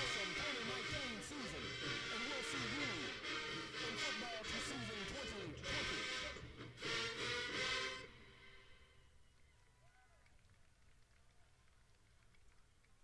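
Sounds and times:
marching band brass playing: 0.0 - 9.0.

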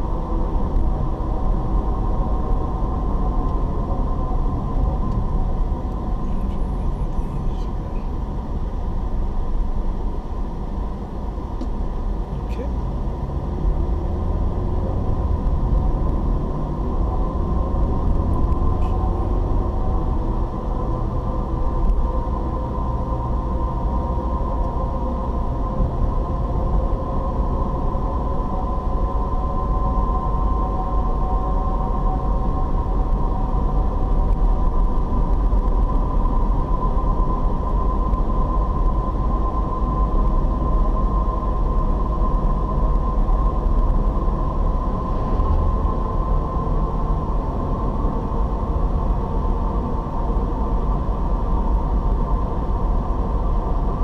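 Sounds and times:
tyre and engine rumble: 0.0 - 54.0.

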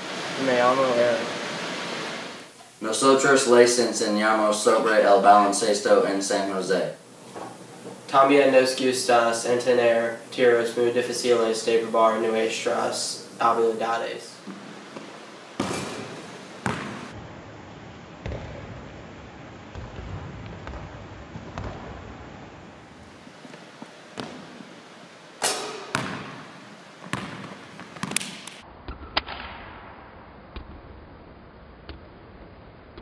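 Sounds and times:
basketball bouncing on wooden floor: 15.0 - 17.2, 18.2 - 18.8, 19.7 - 22.2, 24.2 - 24.5, 25.8 - 28.4
basketball striking backboard and rim: 15.6 - 17.2, 18.2 - 18.8, 19.7 - 22.1, 24.2 - 24.5, 25.4 - 29.7.

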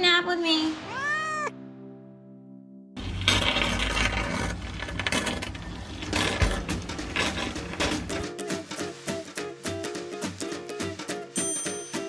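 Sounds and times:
background music: 0.0 - 3.0, 6.2 - 12.0
cat meowing: 0.8 - 1.6.

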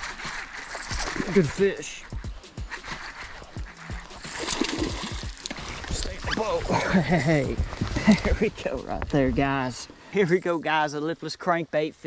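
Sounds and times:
fish thrashing at surface: 0.0 - 2.0, 2.7 - 6.8
water splashing: 0.0 - 8.8.

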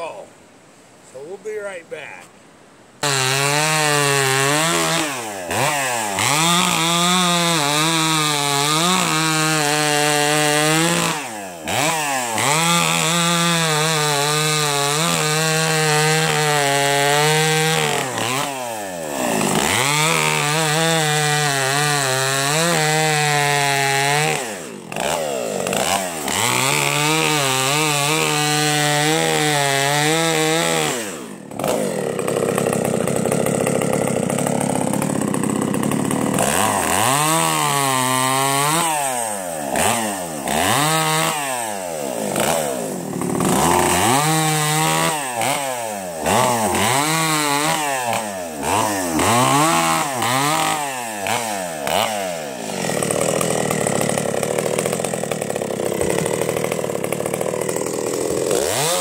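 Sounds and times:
chainsaw cutting logs: 3.0 - 59.0.

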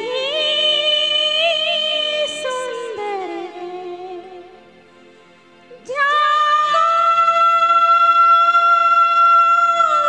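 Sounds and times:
woman singing a long high note: 0.0 - 4.4, 5.8 - 10.0
faint karaoke backing music: 0.0 - 10.0.

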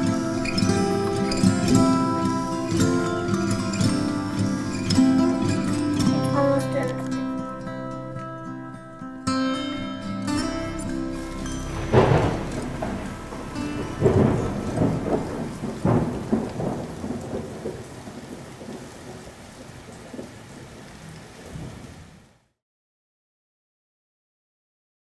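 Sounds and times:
thunderclaps rumbling: 0.0 - 6.3, 10.4 - 22.3
steady rain: 0.0 - 8.5, 9.6 - 22.6.

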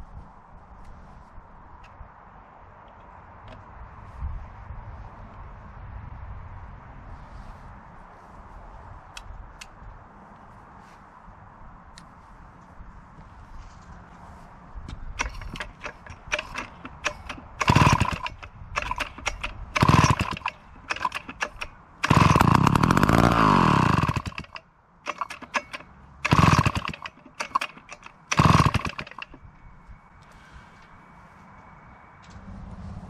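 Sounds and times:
chainsaw popping and sputtering: 15.2 - 29.4
chainsaw running: 15.2 - 29.4.

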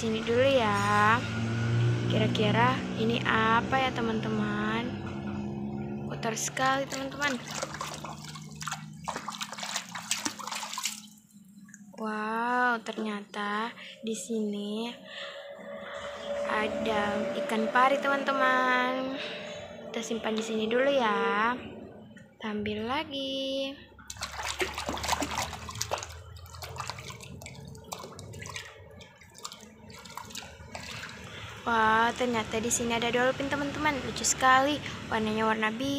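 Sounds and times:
water splashing: 6.5 - 12.0, 24.0 - 32.8
toy sloshing in bucket of water: 6.6 - 11.9, 24.0 - 31.6.

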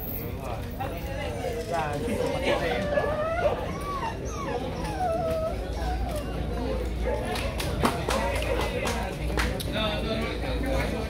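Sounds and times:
dog whining: 2.5 - 6.8.

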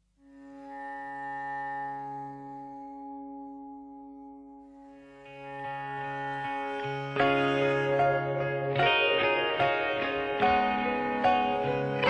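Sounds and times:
low sustained note: 0.2 - 12.0
sustained instrumental chord: 0.3 - 12.0.

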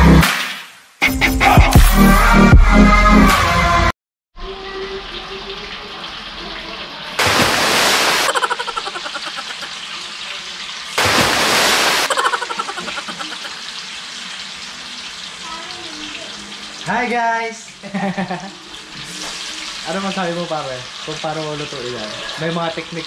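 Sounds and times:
tofu sizzling in hot oil: 4.6 - 7.2, 8.4 - 11.0, 12.2 - 23.0.

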